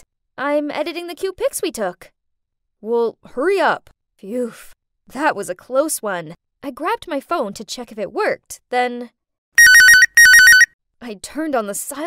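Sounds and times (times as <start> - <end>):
mobile phone ringing: 9.6 - 10.7.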